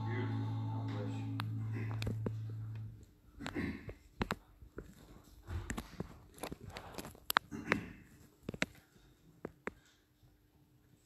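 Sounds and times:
footsteps: 0:00.8 - 0:07.4.

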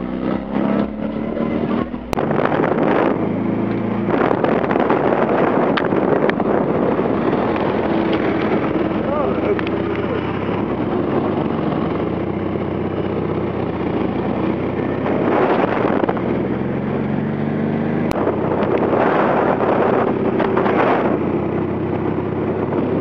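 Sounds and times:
small car engines running: 0:00.0 - 0:23.0.

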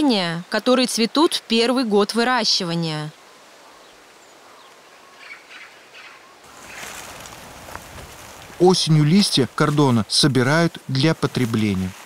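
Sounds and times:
steady outdoor hiss: 0:00.0 - 0:12.0
bird chirps: 0:03.7 - 0:06.9.

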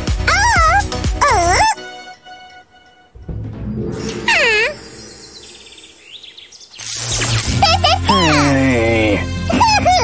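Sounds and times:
light background music: 0:00.0 - 0:06.2, 0:07.3 - 0:10.0
cartoon swish: 0:03.9 - 0:05.5.

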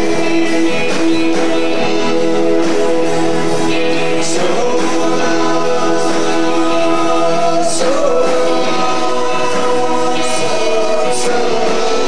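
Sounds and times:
live rock band with vocals: 0:00.0 - 0:12.0
voices singing in harmony: 0:00.0 - 0:12.0.

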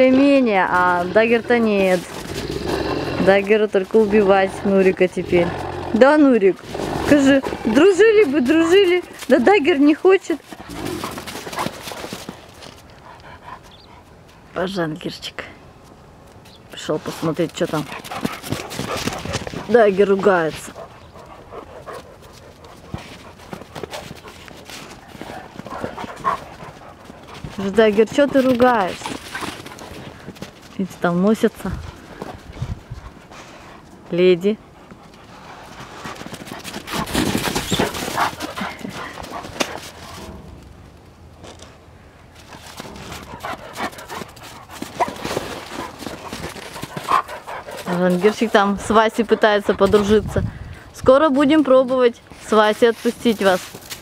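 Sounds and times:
dog growling: 0:00.7 - 0:08.1.

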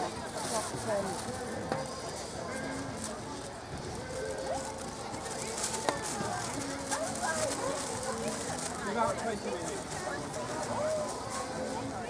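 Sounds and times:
people chattering outdoors: 0:00.0 - 0:12.0.

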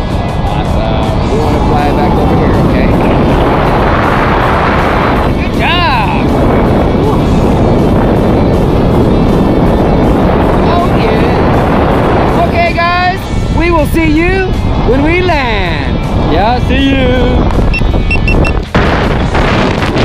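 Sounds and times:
wind rushing over microphone: 0:00.0 - 0:20.0.

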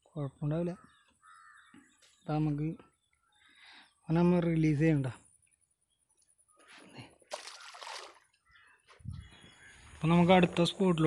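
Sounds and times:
fish splashing into water: 0:07.3 - 0:08.3.

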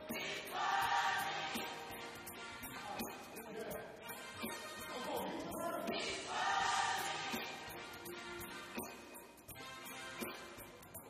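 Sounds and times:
gospel choir singing: 0:00.0 - 0:03.1, 0:04.1 - 0:08.4.

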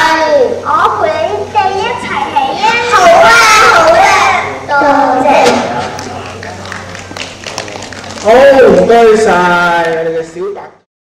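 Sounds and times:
young children speaking: 0:00.0 - 0:06.4.

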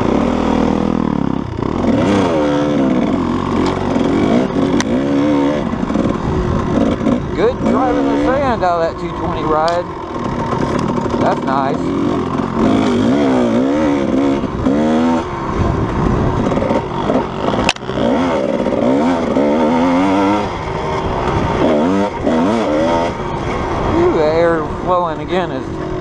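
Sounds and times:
dirt bike engine revving: 0:00.0 - 0:26.0.

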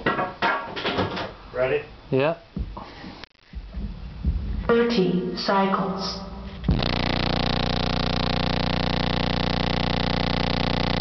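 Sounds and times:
bass test tone through subwoofer: 0:06.4 - 0:11.0.

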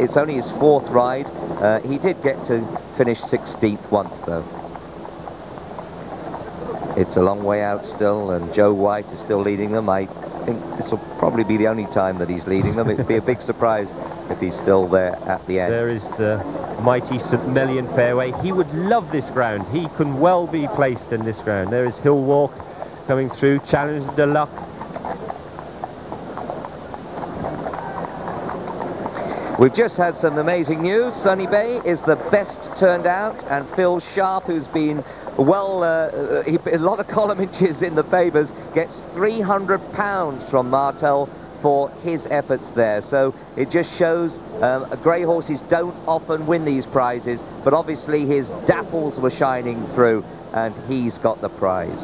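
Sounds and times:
hooves clip-clopping on hard path: 0:00.0 - 0:52.0
steady background hiss: 0:00.0 - 0:52.0
crowd noise: 0:06.2 - 0:25.6, 0:26.2 - 0:42.9, 0:43.6 - 0:52.0.

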